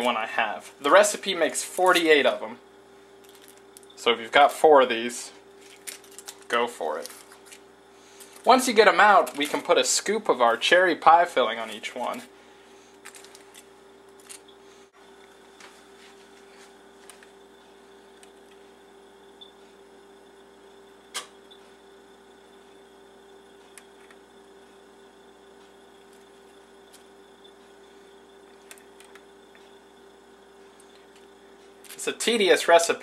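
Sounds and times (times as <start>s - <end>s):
faint steady hum: 0.0s - 33.0s.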